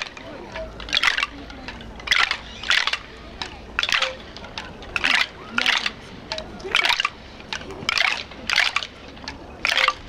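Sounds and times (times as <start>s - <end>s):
bamboo sticks clattering: 0.0s - 10.0s.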